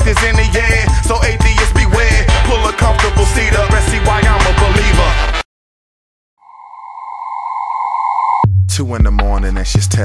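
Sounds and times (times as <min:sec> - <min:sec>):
high electronic tone: 0:06.4 - 0:08.5.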